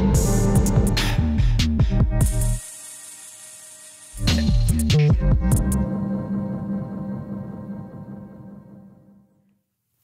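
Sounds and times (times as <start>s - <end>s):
electronic dance music: 0.0s - 6.5s.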